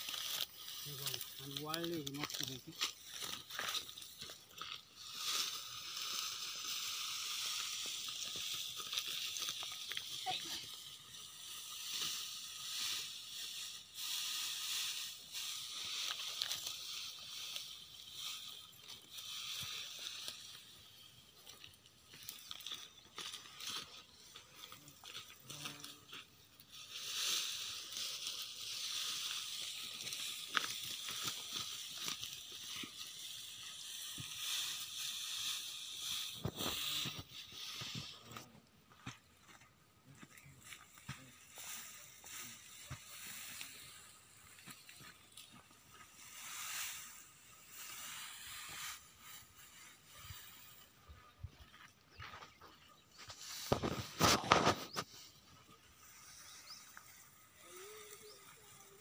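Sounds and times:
steady high hiss: 0.0s - 38.3s, 40.7s - 50.9s
dry stalks rustling and crunching: 0.0s - 59.0s.

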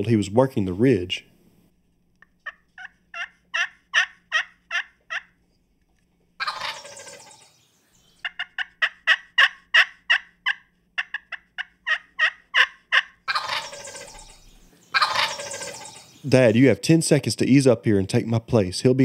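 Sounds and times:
turkey gobbling: 2.3s - 5.4s, 6.4s - 7.6s, 8.2s - 16.6s
quick turkey yelps: 2.4s - 5.4s, 6.4s - 7.6s, 8.2s - 16.4s.

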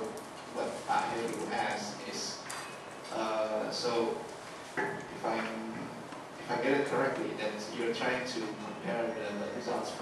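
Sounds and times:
person speaking: 0.0s - 2.5s.

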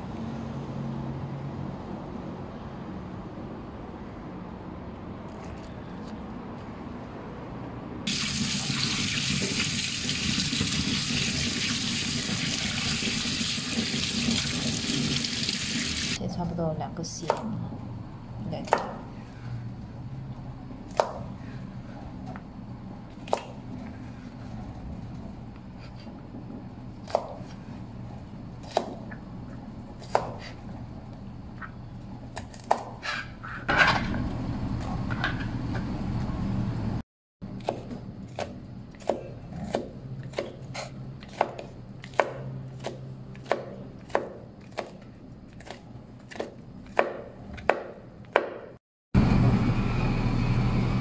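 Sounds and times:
knife chopping on cutting board: 18.6s - 19.1s, 20.9s - 21.3s, 27.0s - 27.6s, 28.6s - 29.2s, 30.0s - 30.6s, 32.4s - 33.3s, 37.6s - 45.0s, 45.6s - 48.8s.

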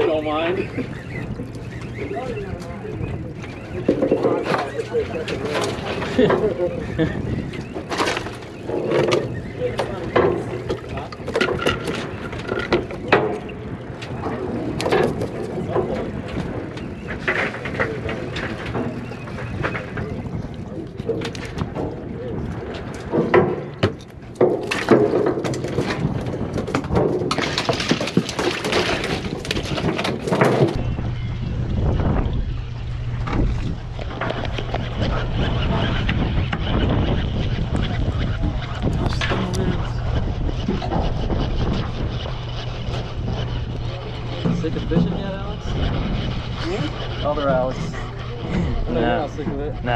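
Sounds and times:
boat engine drone: 0.0s - 49.9s
wind: 0.0s - 49.9s
fish slapping and knocking: 7.6s - 20.3s, 20.9s - 31.0s
low steady hum: 30.4s - 49.9s.

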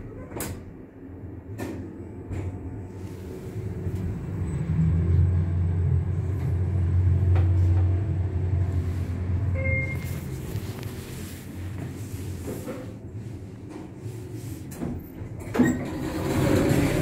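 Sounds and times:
lift car low rumble: 0.0s - 17.0s
short lift beep: 9.5s - 10.2s.

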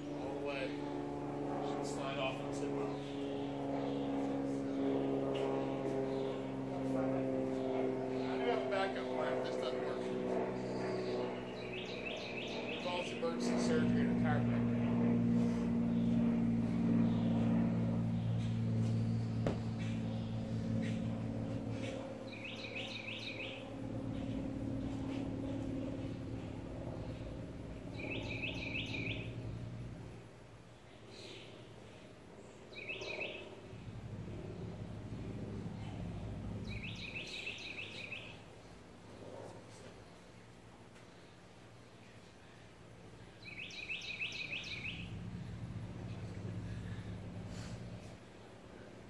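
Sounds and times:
steady low hum: 0.0s - 49.0s
songbird chirping: 21.8s - 24.9s, 28.0s - 29.4s, 32.7s - 33.5s, 36.7s - 38.4s, 43.4s - 45.2s.

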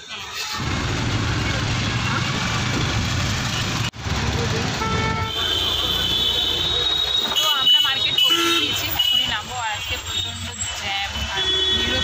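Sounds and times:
road and wind noise: 0.0s - 12.0s
vehicle horn: 4.8s - 10.4s, 11.2s - 12.0s.

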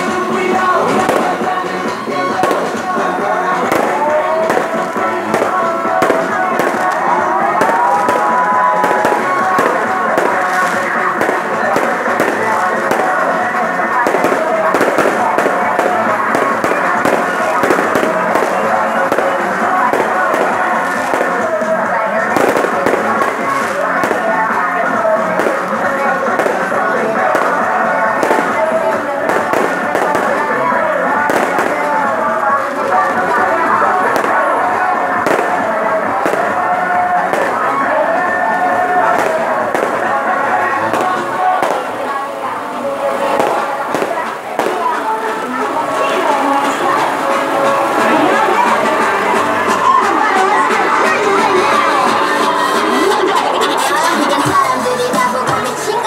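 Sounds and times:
firecrackers crackling: 0.0s - 56.0s
loud music through sound system: 0.0s - 56.0s.

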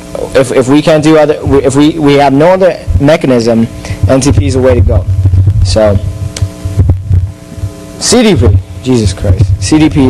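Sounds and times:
low throbbing pulses: 0.0s - 10.0s
steady multi-tone hum: 0.0s - 10.0s.

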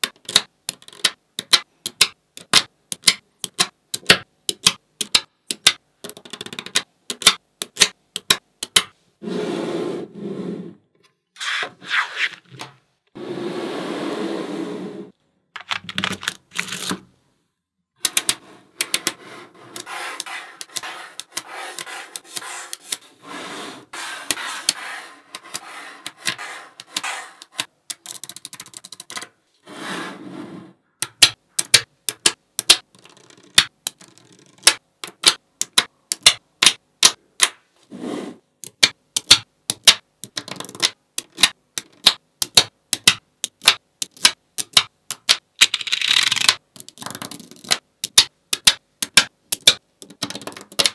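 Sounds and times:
magnetic balls clicking together: 0.0s - 8.9s, 24.6s - 29.3s, 31.0s - 37.6s, 38.6s - 50.9s.

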